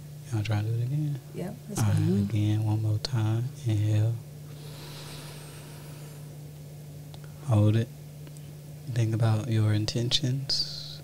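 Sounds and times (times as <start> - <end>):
low electrical hum: 0.0 - 11.0
deep breath in: 4.5 - 6.3.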